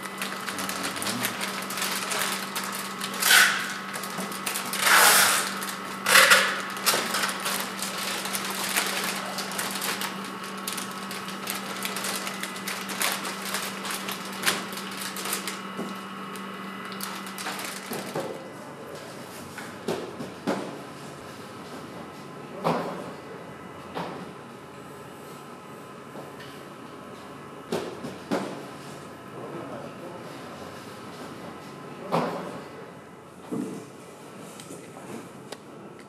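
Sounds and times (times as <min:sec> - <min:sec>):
plastic bags crinkling: 0:00.0 - 0:16.0, 0:16.8 - 0:18.2
band sealer motor hum: 0:00.0 - 0:18.8.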